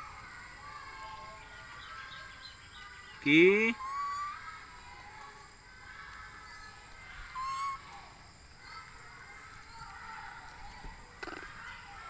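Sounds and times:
baby monkey coo calls: 3.3s - 4.7s, 6.4s - 8.0s.

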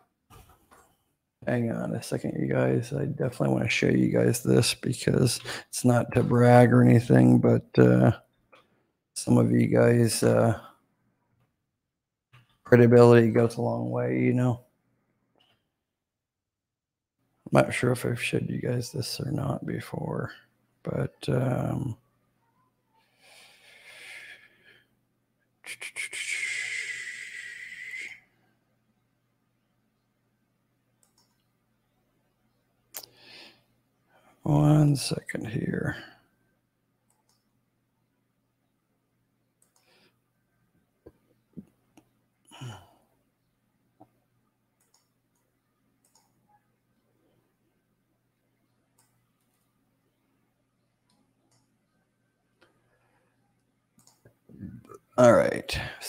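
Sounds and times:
man hissing through teeth: 25.7s - 28.2s
faint computer clicks: 31.0s - 31.6s, 39.6s - 39.9s, 44.8s - 46.4s.

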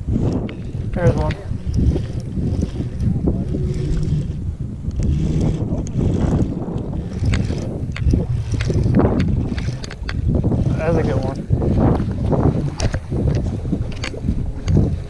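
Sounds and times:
handling clicks and rustles: 0.0s - 15.0s
wind buffeting microphone: 0.0s - 15.0s.

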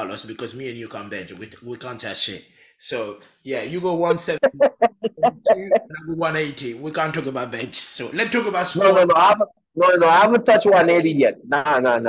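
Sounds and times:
men laughing hard: 4.3s - 6.0s.

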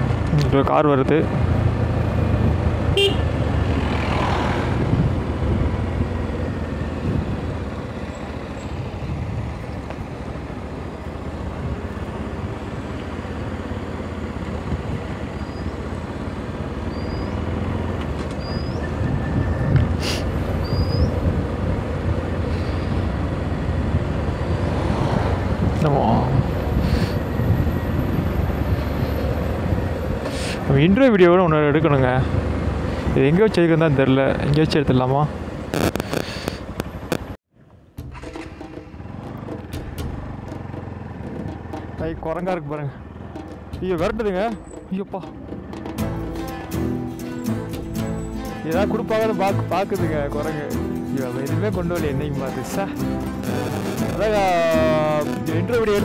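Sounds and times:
motorcycle engine running: 0.0s - 33.1s, 35.4s - 52.0s
wind and road rumble: 0.0s - 56.0s.

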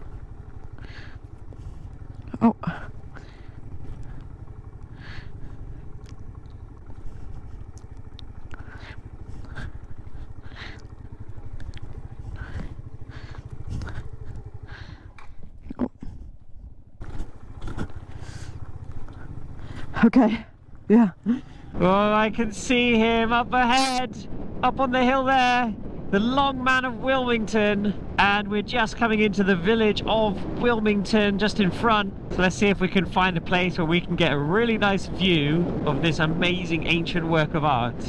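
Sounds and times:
motorcycle engine running: 0.0s - 38.0s.

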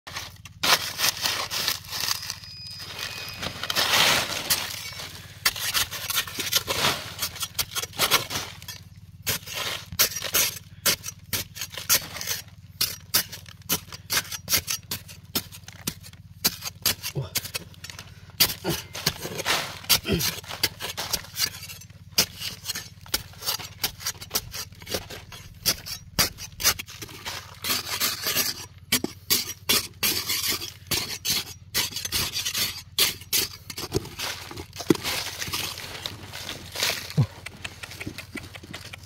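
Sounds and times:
metal blade scraping into clay: 0.2s - 35.8s.

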